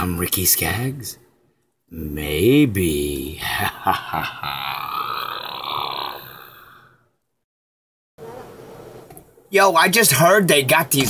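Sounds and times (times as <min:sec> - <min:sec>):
man laughing: 0:03.3 - 0:06.5
man's breathy drawn-out vocal sound: 0:03.4 - 0:07.1.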